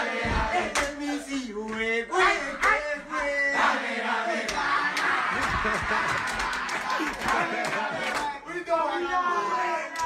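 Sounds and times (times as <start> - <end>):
group chant by many voices: 0.0 - 1.3, 1.9 - 8.4.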